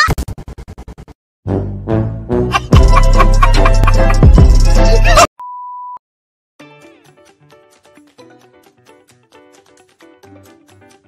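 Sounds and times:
background music: 0:01.5 - 0:05.3, 0:06.6 - 0:11.0.

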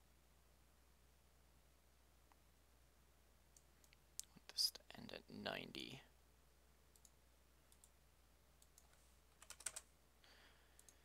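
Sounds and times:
computer clicks: 0:06.9 - 0:08.0, 0:08.6 - 0:09.9, 0:10.8 - 0:11.0.

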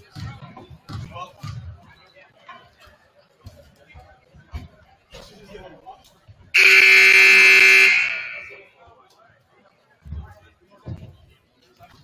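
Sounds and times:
scoreboard horn blast: 0:06.6 - 0:08.6.

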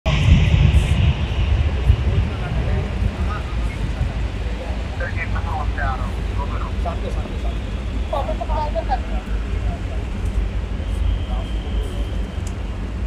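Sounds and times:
vehicle traffic rumble: 0:00.0 - 0:13.0
faint voices: 0:00.1 - 0:13.0.

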